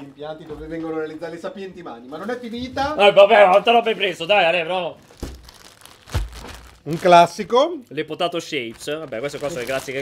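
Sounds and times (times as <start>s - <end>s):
plastic bag crinkling: 5.0s - 10.0s.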